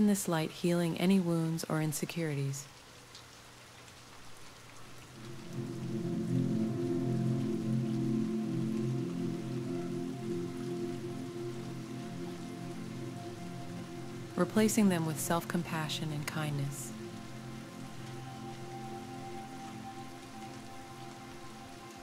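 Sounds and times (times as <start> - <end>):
steady rain: 0.0 - 22.0
sustained music chord: 5.1 - 22.0.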